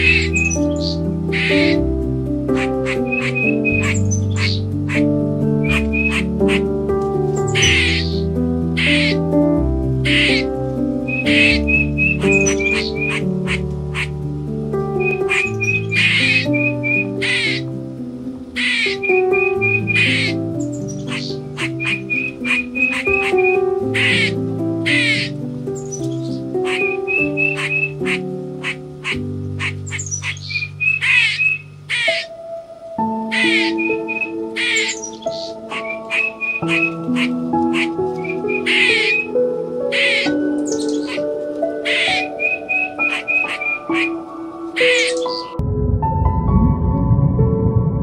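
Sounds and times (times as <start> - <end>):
bird chirps and calls: 0.0 - 1.8, 2.5 - 9.2, 10.0 - 14.2, 15.0 - 17.7, 18.6 - 32.4, 33.1 - 45.6
music of sustained notes: 0.0 - 48.0.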